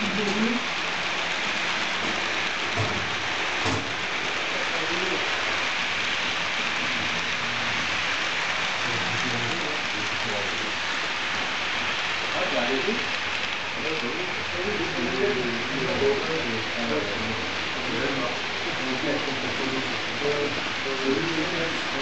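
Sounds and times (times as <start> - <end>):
model train wheels on rails: 0.0 - 22.0.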